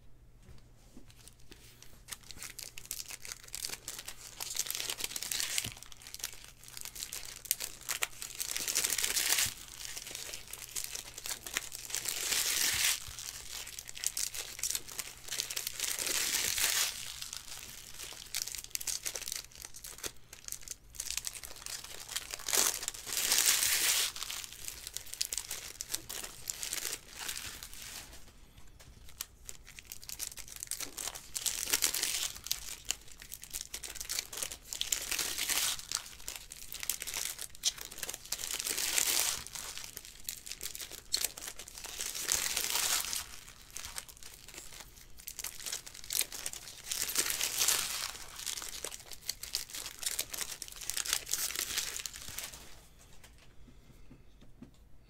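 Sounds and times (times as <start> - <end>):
wrappers crinkling: 1.1 - 53.4
foil packs being torn open: 2.1 - 28.0, 29.0 - 52.7.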